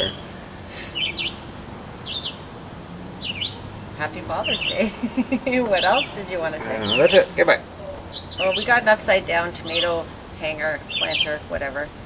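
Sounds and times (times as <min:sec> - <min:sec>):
bird chirping: 0:00.0 - 0:11.7
faint low hum: 0:00.0 - 0:12.0.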